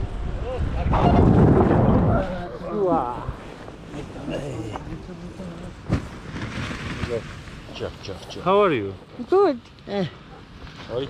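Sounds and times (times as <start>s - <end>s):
wind noise: 0.0s - 5.0s.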